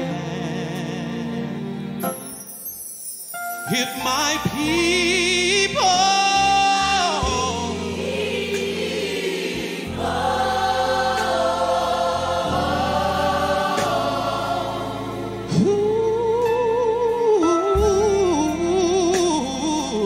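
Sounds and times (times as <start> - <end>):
man singing with vibrato: 0.0 - 1.7, 3.6 - 7.9, 15.5 - 20.0
choir singing with accompaniment: 6.4 - 17.2.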